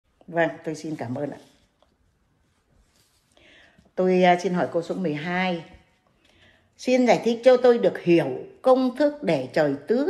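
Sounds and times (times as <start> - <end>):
faint breath drawn in: 3.0 - 4.0, 6.2 - 6.8.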